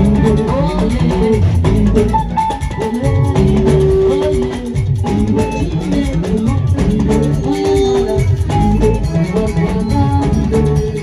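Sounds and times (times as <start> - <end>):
drum kit: 0.0 - 11.0
guitars and bass: 0.0 - 11.0
shaker percussion: 0.0 - 11.0.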